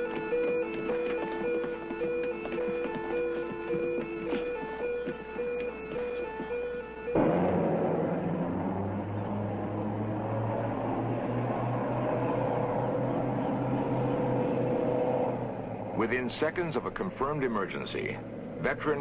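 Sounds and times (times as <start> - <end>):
boat engines droning: 0.0 - 19.0.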